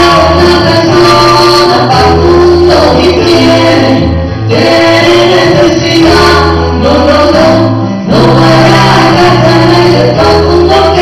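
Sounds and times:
electric keyboard: 0:00.0 - 0:11.0
women singing: 0:00.0 - 0:11.0.

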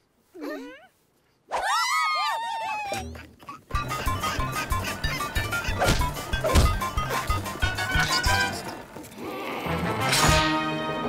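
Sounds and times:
cartoon voices murmuring: 0:01.6 - 0:09.9.

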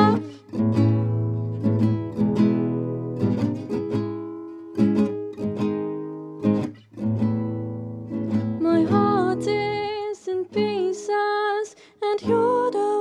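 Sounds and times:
acoustic guitar strumming chords: 0:00.0 - 0:11.2.

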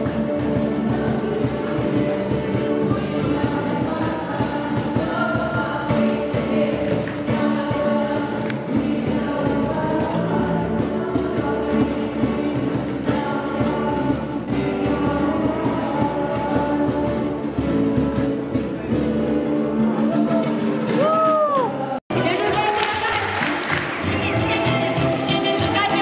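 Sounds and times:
group singing along: 0:00.0 - 0:18.0
live band music: 0:00.0 - 0:26.0.

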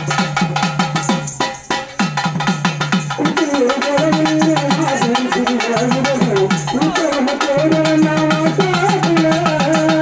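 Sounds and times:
fast drum beat: 0:00.0 - 0:10.0
held melody line: 0:02.3 - 0:10.0.

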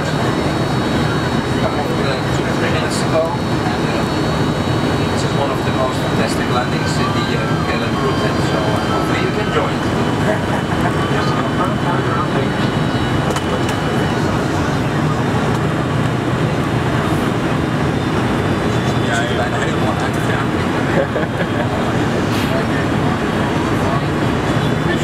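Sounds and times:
airliner cabin rumble: 0:00.0 - 0:25.0.

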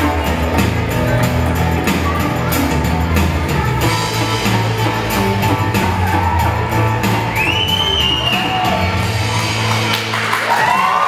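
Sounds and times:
classical guitar with bass and drums: 0:00.0 - 0:09.2
audience whooping: 0:05.4 - 0:11.0.

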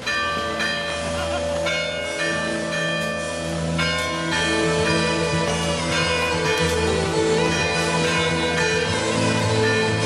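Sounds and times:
bells ringing: 0:00.0 - 0:10.0
steady low drone: 0:00.4 - 0:10.0.

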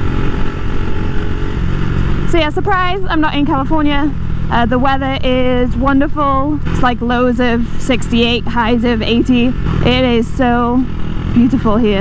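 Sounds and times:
motorcycle engine cruising: 0:00.0 - 0:12.0
wind rumble on microphone: 0:00.0 - 0:12.0.

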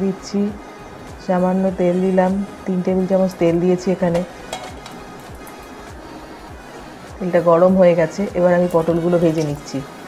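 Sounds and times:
background music with steady beat: 0:00.0 - 0:10.0
oil sizzling in a pan: 0:03.8 - 0:06.8.

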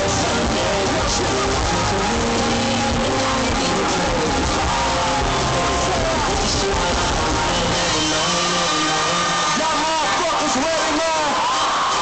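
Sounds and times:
loud hip-hop concert music: 0:00.0 - 0:12.0.

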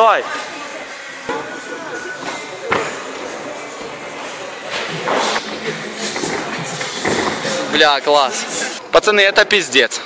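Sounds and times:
voices in echoing hall: 0:00.0 - 0:10.0.

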